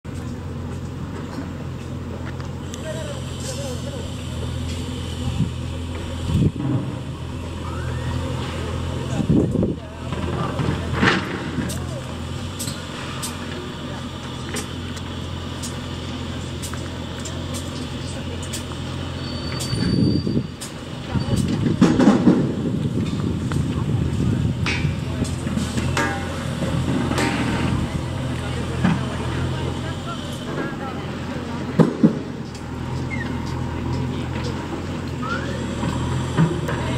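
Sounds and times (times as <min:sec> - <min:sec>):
engine droning: 0:00.0 - 0:36.9.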